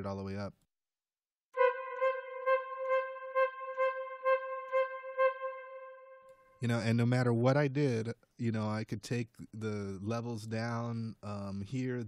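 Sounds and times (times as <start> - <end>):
sampled flute note repeating: 1.6 - 6.5.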